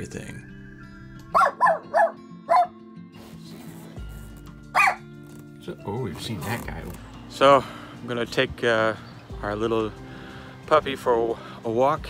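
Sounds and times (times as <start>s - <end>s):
background music: 0.0s - 12.0s
puppy barking: 1.3s - 2.8s, 4.7s - 5.1s.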